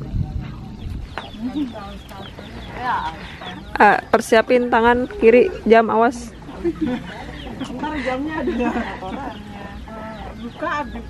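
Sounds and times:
chickens clucking: 0:00.0 - 0:11.0
low voices: 0:00.0 - 0:11.0.

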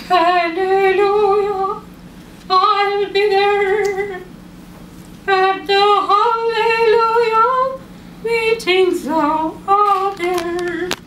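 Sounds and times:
woman singing gospel unaccompanied: 0:00.0 - 0:01.9, 0:02.5 - 0:04.3, 0:05.2 - 0:11.0.

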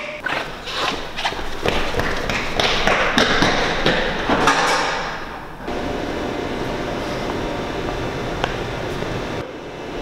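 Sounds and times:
running footsteps on hard floor: 0:00.3 - 0:05.1.

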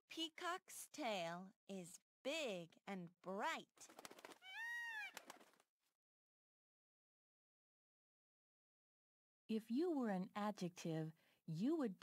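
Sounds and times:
peacock call: 0:04.4 - 0:05.3.

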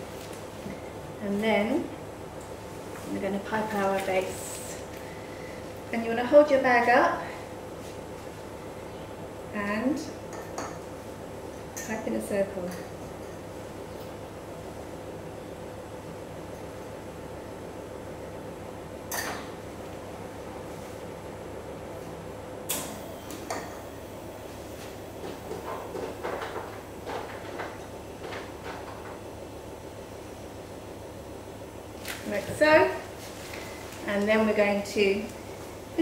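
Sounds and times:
low room hum: 0:00.0 - 0:36.0.

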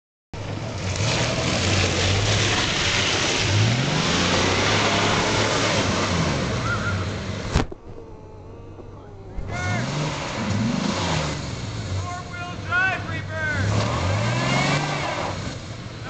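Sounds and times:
car engine revving: 0:00.4 - 0:16.0.

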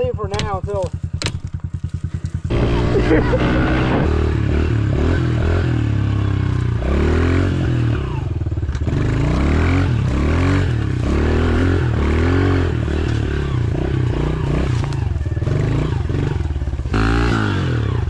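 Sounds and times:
motorbike engine revving: 0:00.0 - 0:18.0.

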